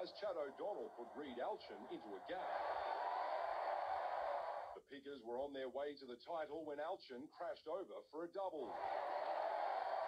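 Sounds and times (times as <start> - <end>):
narration voice: 0.0 - 2.5
stadium crowd cheering: 0.0 - 4.8, 8.6 - 10.0.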